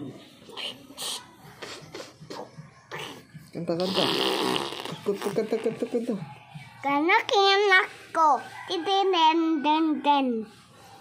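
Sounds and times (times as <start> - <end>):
fart noise blown into fist: 3.8 - 5.3.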